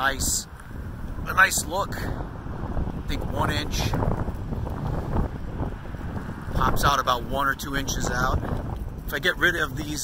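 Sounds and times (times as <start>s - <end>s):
wind blowing across microphone: 0.0s - 10.0s.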